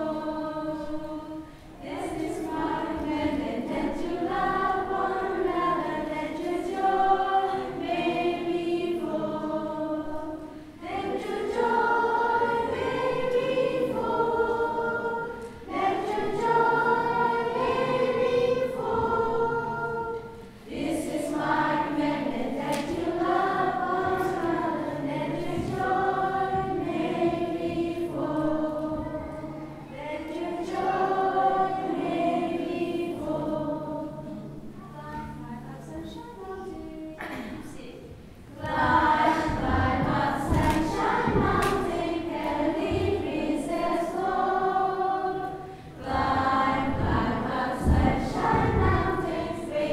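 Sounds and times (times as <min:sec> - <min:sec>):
children's choir singing: 0:00.0 - 0:49.9.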